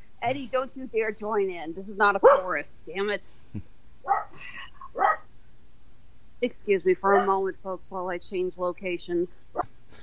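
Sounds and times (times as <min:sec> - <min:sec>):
dog barking: 0:02.2 - 0:02.5, 0:04.1 - 0:05.2, 0:07.1 - 0:07.4.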